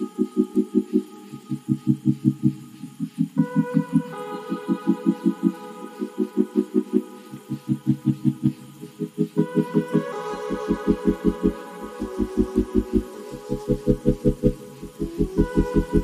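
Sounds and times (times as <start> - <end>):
rapid pulsing low notes: 0.0 - 16.0.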